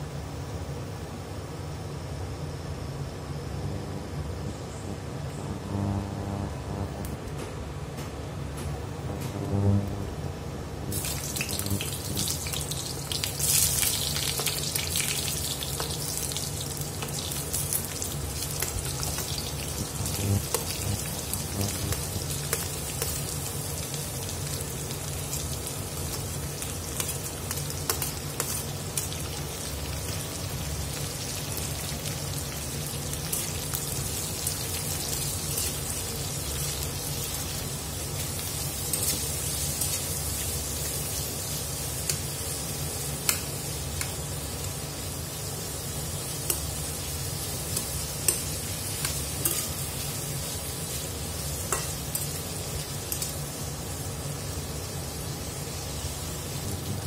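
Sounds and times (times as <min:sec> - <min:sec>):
low hum: 0:02.2 - 0:13.8, 0:15.4 - 0:25.0
onions sizzling in oil: 0:10.9 - 0:57.0.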